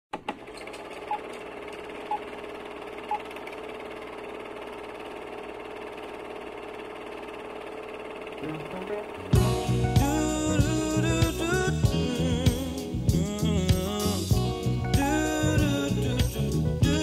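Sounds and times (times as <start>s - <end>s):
film projector whirring: 0.1s - 9.4s.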